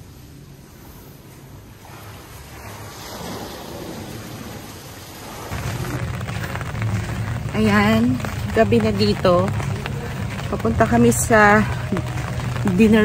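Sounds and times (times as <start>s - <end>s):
steady rain: 0.0s - 13.0s
thunder rumble: 0.0s - 13.0s.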